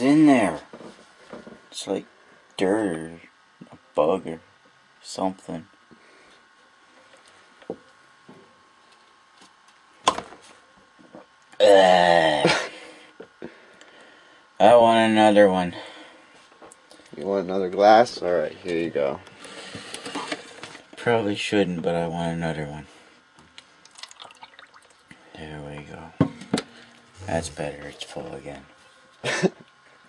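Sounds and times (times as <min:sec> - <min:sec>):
drink pouring into cup: 0:23.8 - 0:25.2.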